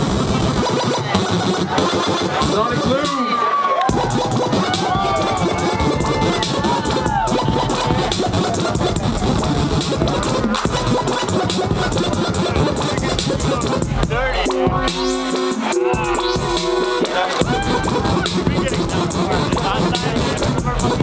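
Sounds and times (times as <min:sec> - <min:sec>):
electronic bass music: 0:00.0 - 0:03.3, 0:03.9 - 0:21.0.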